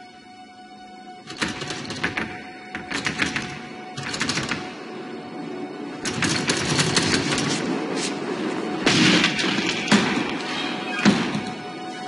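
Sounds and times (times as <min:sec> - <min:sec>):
film soundtrack music: 0:00.0 - 0:12.0
rapid rattling clicks: 0:01.3 - 0:04.8, 0:06.0 - 0:07.7.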